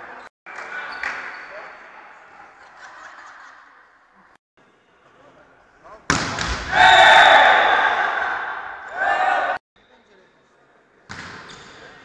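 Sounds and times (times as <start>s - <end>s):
sports hall ambience: 0.0s - 12.0s
volleyball hit: 6.1s - 6.9s
players shouting: 6.6s - 9.6s.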